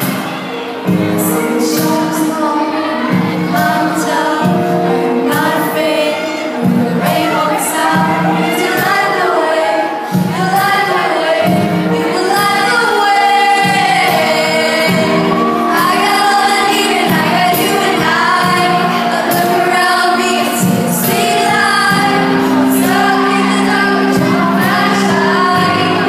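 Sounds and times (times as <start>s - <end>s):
instrumental accompaniment: 0.0s - 26.0s
woman singing into a microphone: 0.9s - 26.0s.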